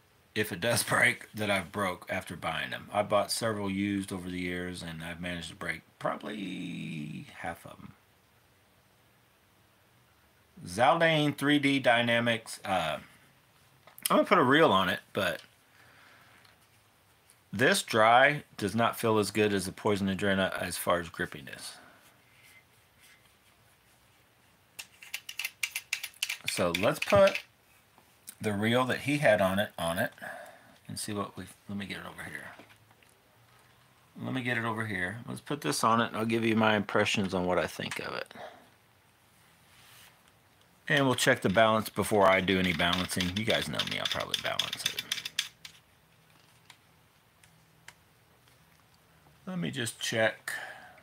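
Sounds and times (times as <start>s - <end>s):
fishing reel clicks and scrapes: 24.8s - 27.5s.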